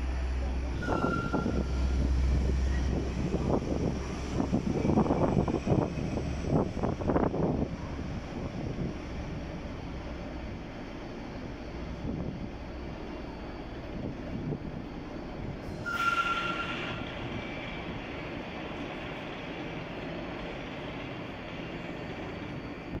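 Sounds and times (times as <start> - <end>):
diesel railcar rumble: 0.0 - 23.0
high squeal: 0.7 - 3.1, 15.2 - 17.9.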